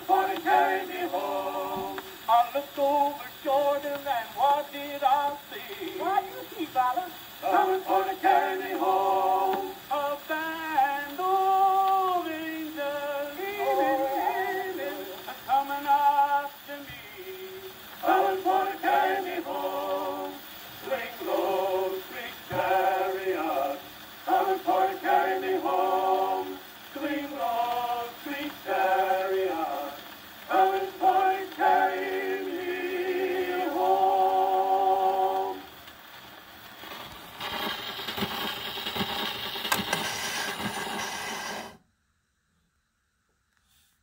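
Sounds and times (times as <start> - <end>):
male vocal quartet singing: 0.0 - 6.4, 7.4 - 35.7
record hiss and crackle: 0.0 - 44.0.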